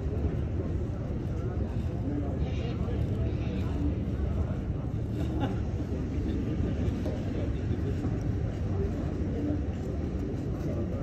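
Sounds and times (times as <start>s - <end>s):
distant people talking: 0.0s - 11.0s.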